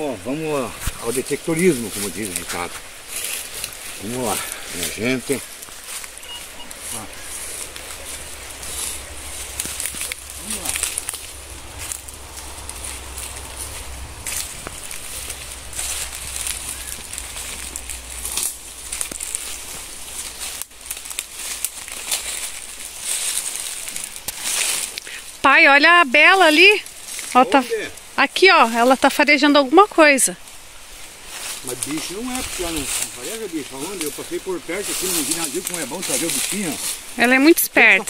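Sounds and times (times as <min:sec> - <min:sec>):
footsteps crunching dry leaves: 0:00.0 - 0:38.0
steady high hiss: 0:00.0 - 0:38.0.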